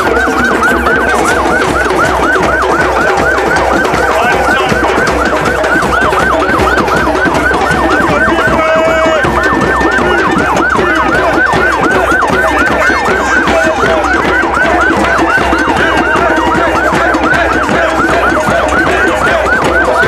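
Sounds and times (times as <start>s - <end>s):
crowd conga drumming: 0.0s - 20.0s
police siren yelping: 0.0s - 20.0s.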